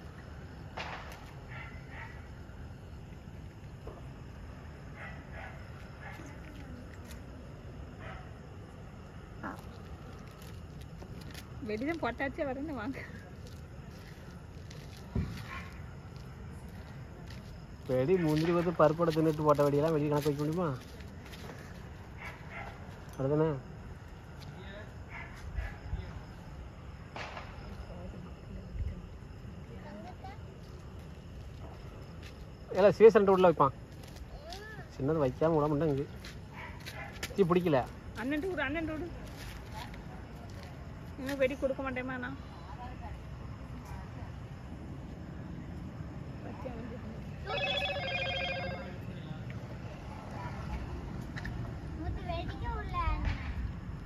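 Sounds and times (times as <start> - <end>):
crickets chirping: 0.0 - 54.0
low background noise: 0.0 - 54.0
trilling electronic phone ring: 47.4 - 49.0.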